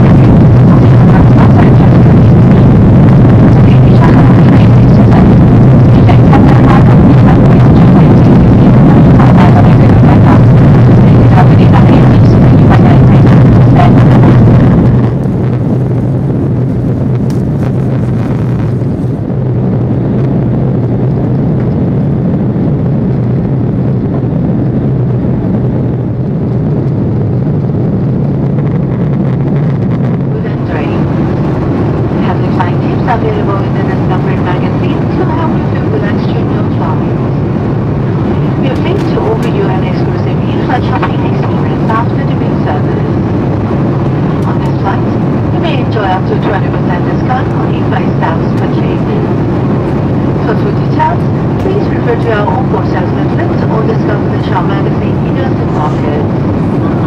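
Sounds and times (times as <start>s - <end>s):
public address announcement: 0.0s - 2.2s, 3.2s - 14.4s, 30.3s - 31.5s, 32.1s - 37.4s, 38.1s - 43.3s, 44.1s - 49.4s, 50.2s - 57.0s
airplane cabin engine drone: 0.0s - 57.0s.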